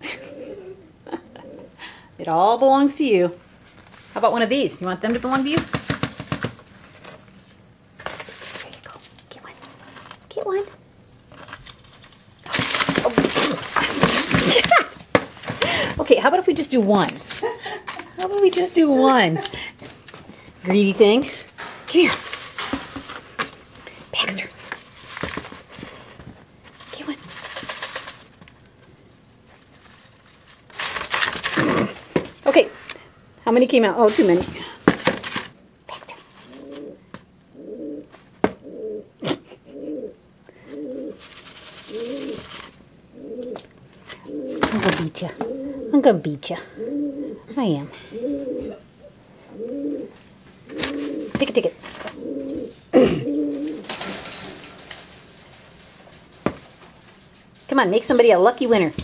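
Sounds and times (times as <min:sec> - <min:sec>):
pigeon cooing: 0:00.0 - 0:02.1, 0:12.6 - 0:15.0, 0:35.9 - 0:54.8
paper tickets rustling in bucket: 0:11.2 - 0:15.9, 0:16.5 - 0:20.1, 0:20.7 - 0:25.9, 0:26.6 - 0:28.4, 0:29.5 - 0:32.6, 0:41.2 - 0:42.8.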